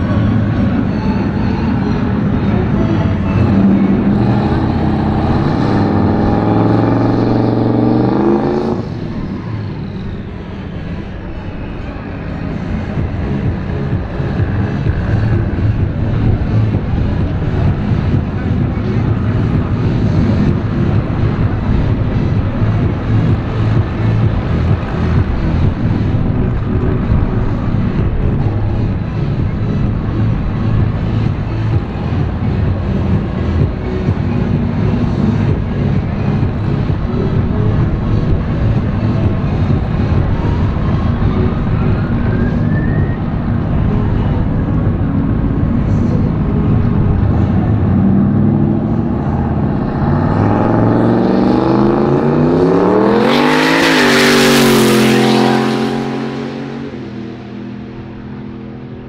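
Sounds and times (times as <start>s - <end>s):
drag car engine revving and idling: 0.0s - 59.0s.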